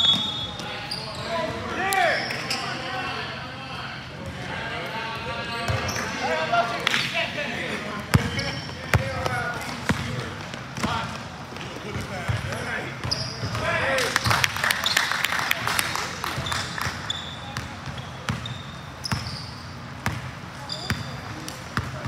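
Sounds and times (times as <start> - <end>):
players' voices: 0.0 - 19.0.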